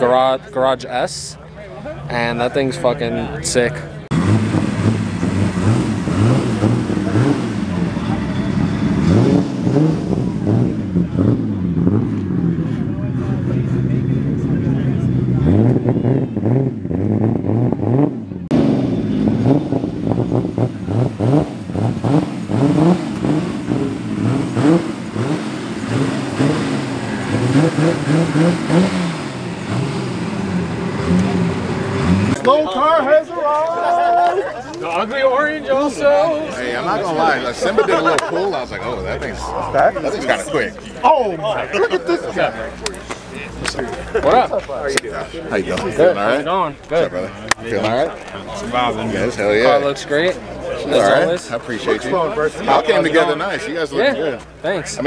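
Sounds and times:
people talking: 0.0s - 4.1s, 6.0s - 16.8s, 18.9s - 28.9s, 31.0s - 55.0s
car engine revving: 3.2s - 32.6s.

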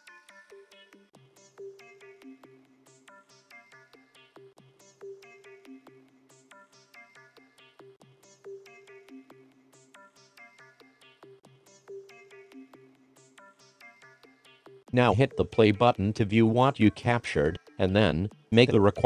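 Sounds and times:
chiming electronic melody: 15.0s - 16.0s.

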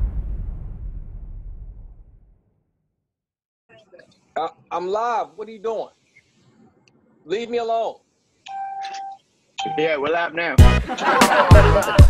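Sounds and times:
person speaking: 3.7s - 10.6s
electronic chime tone: 8.5s - 10.0s
loud music with heavy beat: 10.6s - 12.0s.

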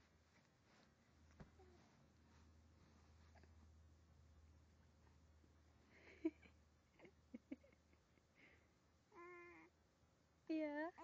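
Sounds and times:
baby cooing: 9.1s - 9.7s.

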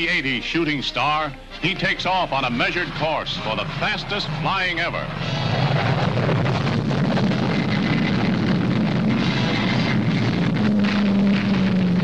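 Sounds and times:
jet engine roar: 0.0s - 12.0s
low hum: 1.4s - 12.0s.

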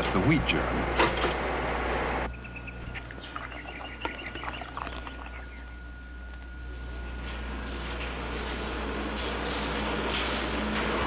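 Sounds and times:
thin steady whine: 0.3s - 11.0s
low hum: 0.7s - 9.2s
animal high chirps: 2.3s - 5.8s.

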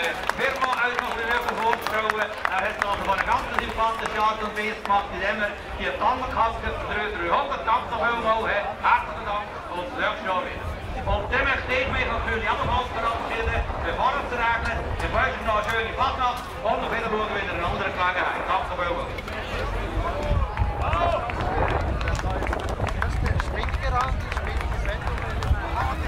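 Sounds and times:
background crowd: 0.0s - 26.0s
men talking: 0.0s - 26.0s
low rumble: 20.5s - 24.3s.

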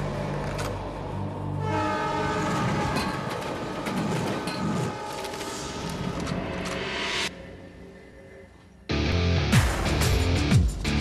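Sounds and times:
train horn blowing: 1.5s - 6.0s.

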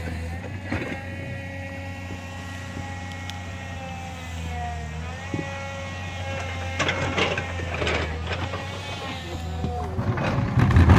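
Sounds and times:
engine humming: 0.0s - 10.9s.

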